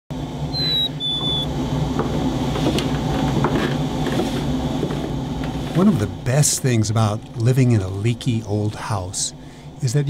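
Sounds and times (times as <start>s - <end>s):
low steady hum: 0.1s - 10.0s
whistled notes: 0.6s - 1.5s.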